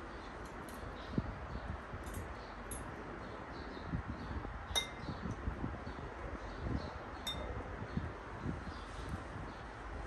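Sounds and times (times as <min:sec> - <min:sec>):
metal spoon clinking against dish: 0:04.8 - 0:05.0, 0:07.2 - 0:07.5.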